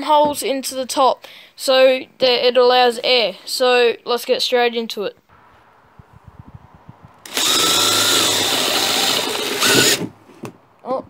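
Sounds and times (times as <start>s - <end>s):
cordless drill whining: 7.2s - 10.1s.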